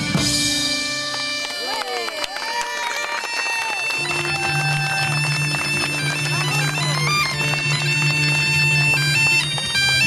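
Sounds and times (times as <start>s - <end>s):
drums: 0.0s - 1.7s
bagpipe drone: 0.0s - 10.0s.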